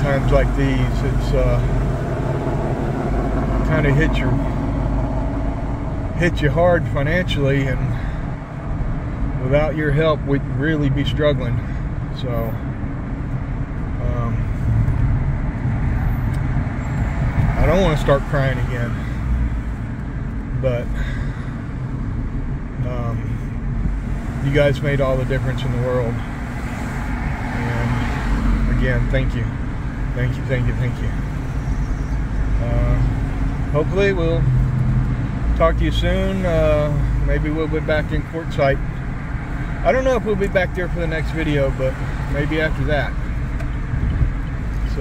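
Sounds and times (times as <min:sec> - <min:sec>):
road and wind noise in car: 0:00.0 - 0:45.0.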